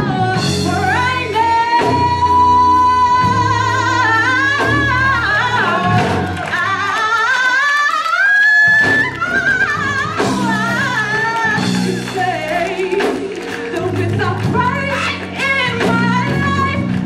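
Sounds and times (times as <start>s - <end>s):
woman singing gospel: 0.0s - 17.0s.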